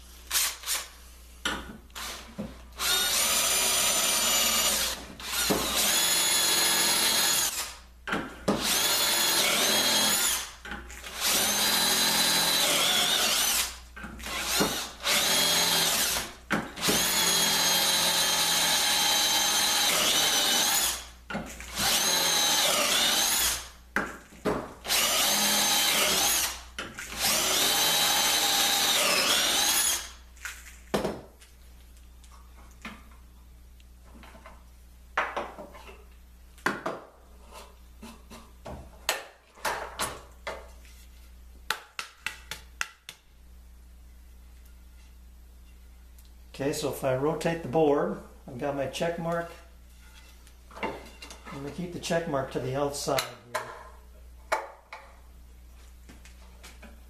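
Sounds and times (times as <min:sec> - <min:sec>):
cordless drill boring into wood: 0:00.3 - 0:00.9, 0:02.0 - 0:07.8, 0:08.6 - 0:21.1, 0:21.7 - 0:23.7, 0:24.8 - 0:30.2.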